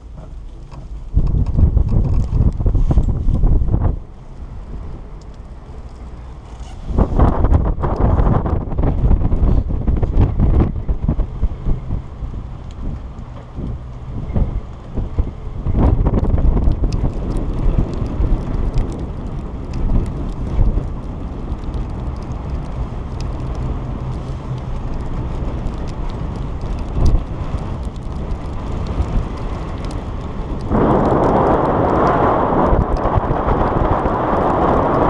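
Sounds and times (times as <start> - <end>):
wind buffeting microphone: 0.0 - 35.0.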